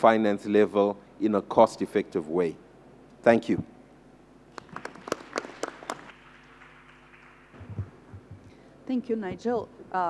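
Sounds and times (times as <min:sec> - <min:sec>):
light applause: 0:04.5 - 0:08.3.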